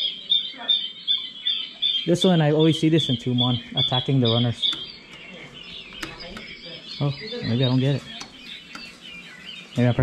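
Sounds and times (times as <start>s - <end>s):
recorded bird call from speaker: 0.0s - 10.0s.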